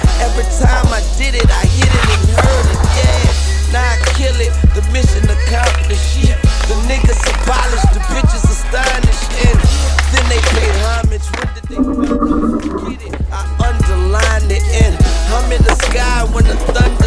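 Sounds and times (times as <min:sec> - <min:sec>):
hip hop backing track: 0:00.0 - 0:17.0
skateboard wheels rolling: 0:01.3 - 0:03.4, 0:15.5 - 0:17.0.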